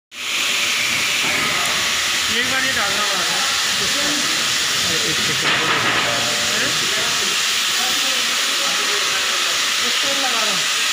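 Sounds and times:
machine hissing: 0.2s - 10.9s.

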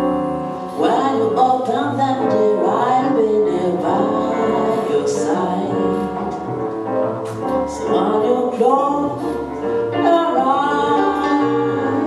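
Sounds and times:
digital piano: 0.0s - 12.0s
double bass: 0.0s - 12.0s
woman singing jazz: 0.0s - 12.0s.

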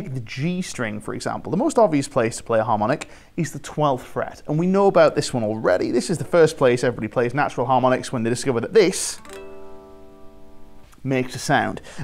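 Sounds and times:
electric guitar harmonic note: 9.2s - 11.0s.

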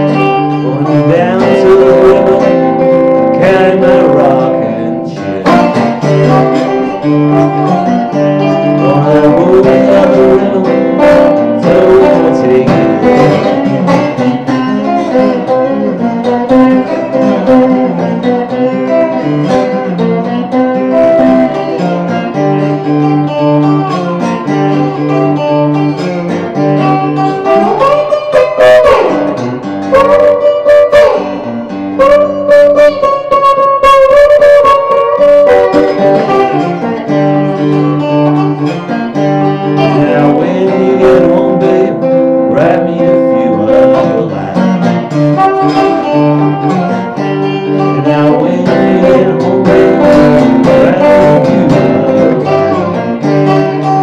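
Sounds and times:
slide electric guitar blues: 0.0s - 54.0s.

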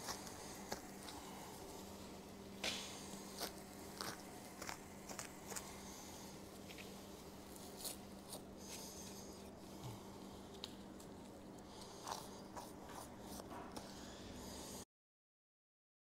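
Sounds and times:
knife cutting hide crackles: 0.0s - 14.8s
steady low hum: 0.0s - 14.8s.

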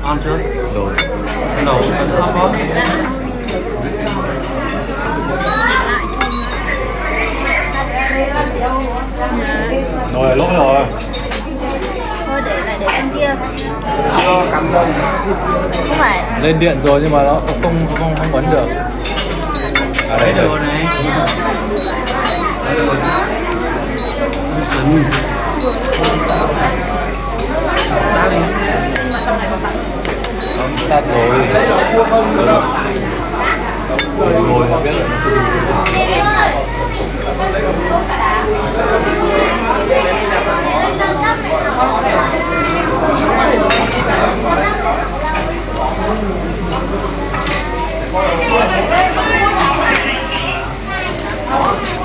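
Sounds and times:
voices talking: 0.0s - 52.0s.

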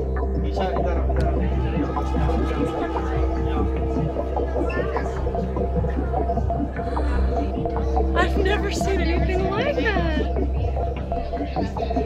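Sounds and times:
sustained tones: 0.0s - 11.9s
faint voices: 0.0s - 12.0s.

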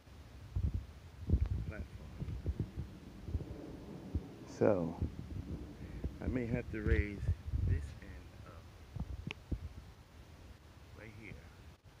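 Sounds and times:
faint low hum: 0.0s - 12.0s
soft low thumps: 0.5s - 8.2s, 8.9s - 9.9s.

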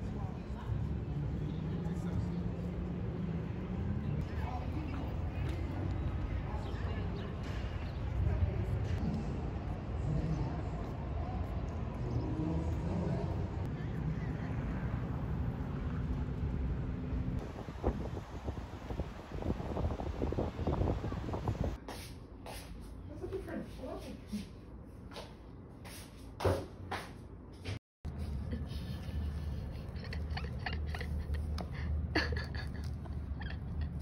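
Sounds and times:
street traffic rumble: 0.0s - 34.0s.

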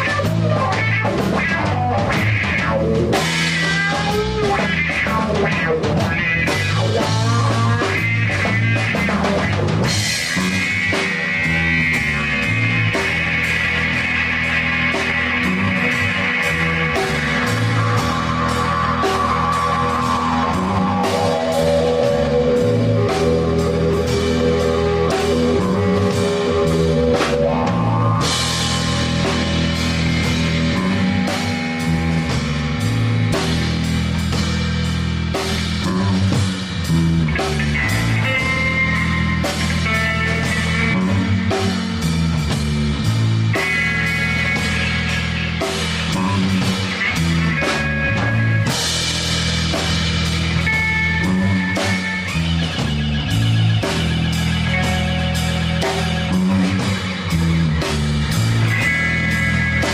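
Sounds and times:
bass guitar: 0.0s - 59.9s
drum kit: 0.0s - 59.9s
electric guitar: 0.0s - 59.9s
live rock band: 0.0s - 59.9s.

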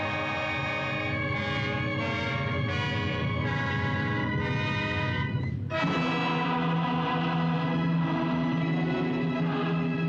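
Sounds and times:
orchestral music chords: 0.0s - 10.0s.

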